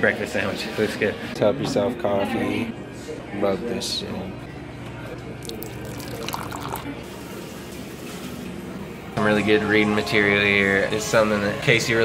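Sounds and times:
coffee pouring into a mug: 0:05.4 - 0:07.0.

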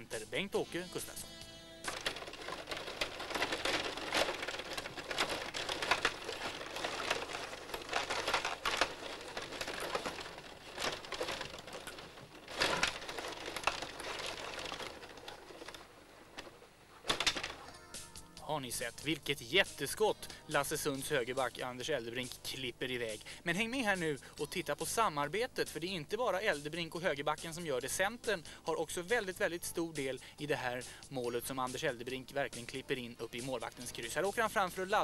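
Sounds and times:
plastic players and puck clacking: 0:00.0 - 0:35.0
rods rattling on hockey table: 0:01.0 - 0:18.0.

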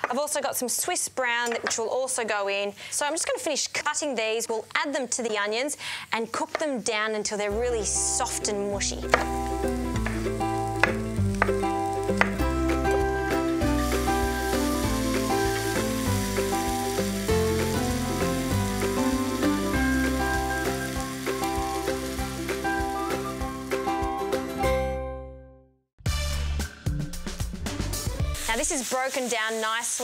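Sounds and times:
background music: 0:07.4 - 0:28.8
vegetables sizzling in frying pan: 0:08.1 - 0:23.9, 0:28.2 - 0:30.0.

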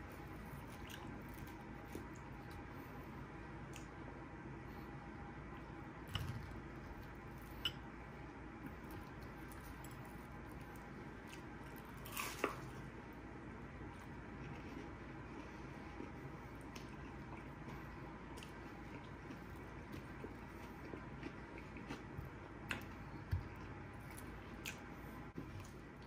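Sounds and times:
chewing with wet mouth sounds: 0:00.0 - 0:03.9, 0:13.9 - 0:26.0.

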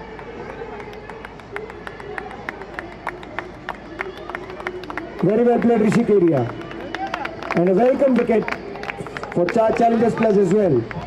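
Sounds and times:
faint voices: 0:00.0 - 0:11.0
people clapping: 0:00.0 - 0:11.0.

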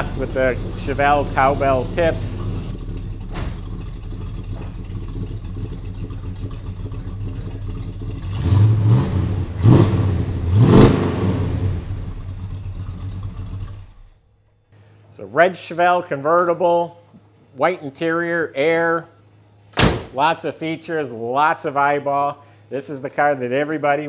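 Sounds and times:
car engine idling and revving: 0:00.0 - 0:14.2.

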